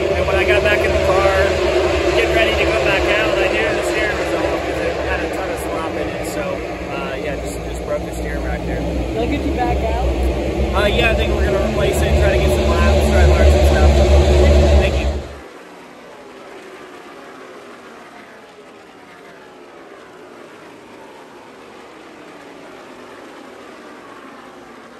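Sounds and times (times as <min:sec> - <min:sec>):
loud low rumble: 0:00.0 - 0:15.4
race car engines passing: 0:00.0 - 0:24.9.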